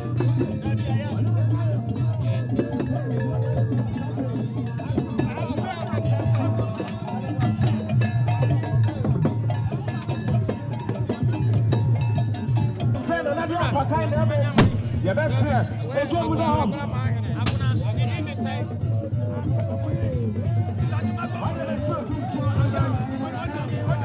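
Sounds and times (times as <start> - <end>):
drums beaten with sticks: 0.0 - 18.5
crowd voices: 0.0 - 24.0.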